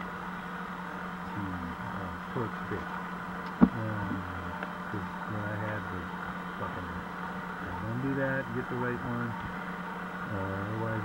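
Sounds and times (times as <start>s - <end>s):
steady low hum: 0.0s - 11.0s
muffled man talking: 1.3s - 2.9s, 3.6s - 9.4s, 10.3s - 11.0s.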